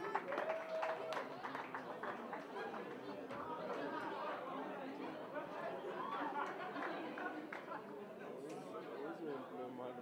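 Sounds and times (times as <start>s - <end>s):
chatter of many voices: 1.4s - 10.0s.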